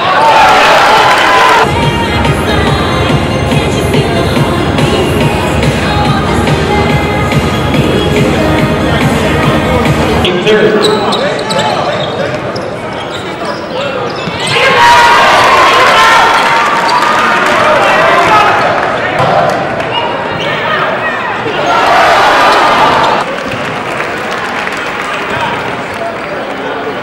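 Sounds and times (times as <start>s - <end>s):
crowd voices: 0.0s - 27.0s.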